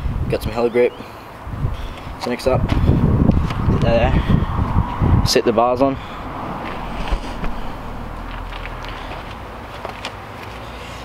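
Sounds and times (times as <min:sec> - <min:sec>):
low outdoor rumble: 0:02.8 - 0:10.0
footsteps on concrete: 0:06.5 - 0:10.6.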